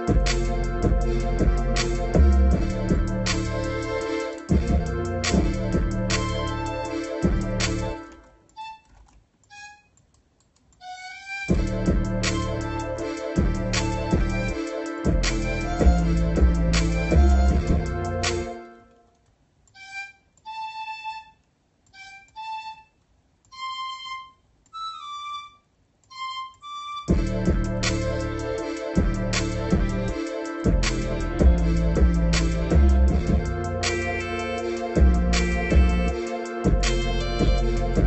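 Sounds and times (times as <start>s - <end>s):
looped beat: 0.0s - 8.2s, 10.9s - 18.6s, 26.1s - 38.0s
flute-like synth melody: 0.0s - 8.4s, 11.5s - 19.0s, 23.5s - 38.0s.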